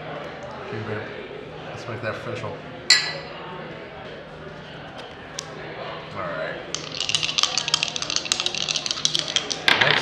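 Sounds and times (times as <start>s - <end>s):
dice rattling: 6.7s - 10.0s.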